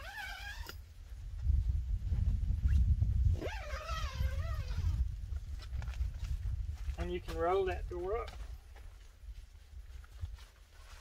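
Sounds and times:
zipper being pulled open: 0:00.0 - 0:00.8, 0:02.6 - 0:05.1.

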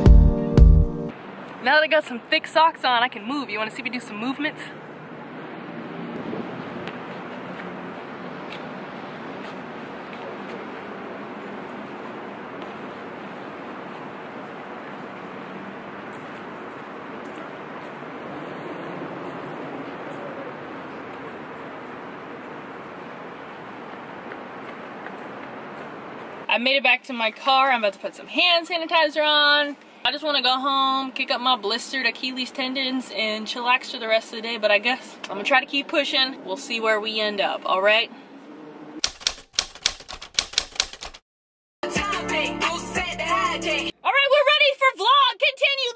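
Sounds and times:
distant traffic hiss: 0:01.1 - 0:26.6, 0:27.6 - 0:39.0
typewriter keys clacking: 0:39.0 - 0:41.2.

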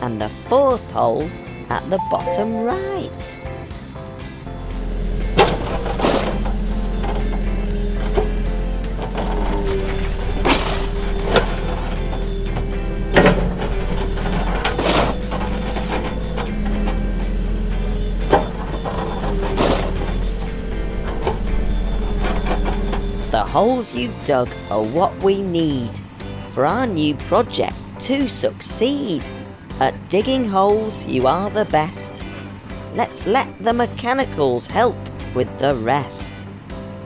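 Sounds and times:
background music: 0:00.0 - 0:37.0
toy digger engine rumble: 0:04.7 - 0:24.0
digging hits and scrapes: 0:09.0 - 0:12.1, 0:13.2 - 0:17.2, 0:18.3 - 0:21.4.

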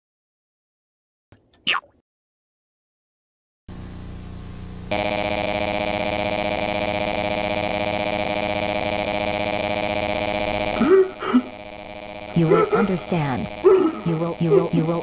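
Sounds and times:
low steady hum: 0:03.7 - 0:15.0
loud electronic drone: 0:04.6 - 0:15.0.

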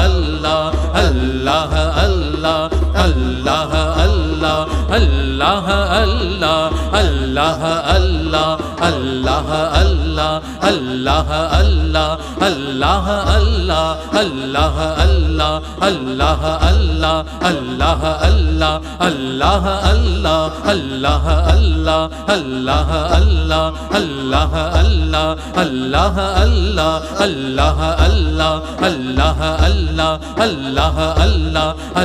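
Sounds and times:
melodic devotional chanting: 0:00.0 - 0:32.0
steady low drum beat: 0:00.0 - 0:32.0.

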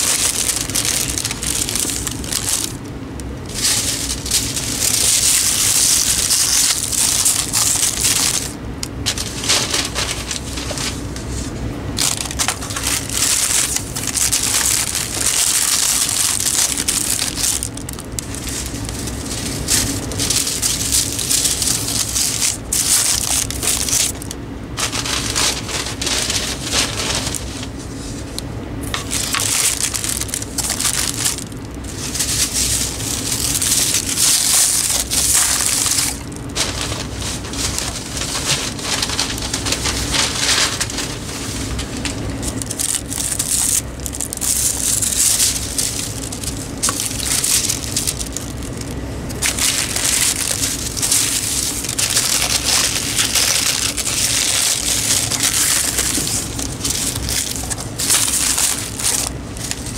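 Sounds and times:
plastic wrap and paper crinkling: 0:00.0 - 0:59.9
steady low hum: 0:00.0 - 0:59.9.

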